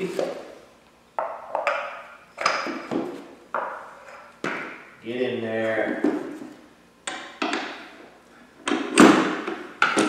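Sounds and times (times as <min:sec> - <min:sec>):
wheel knocked onto axle: 0:08.7 - 0:10.0.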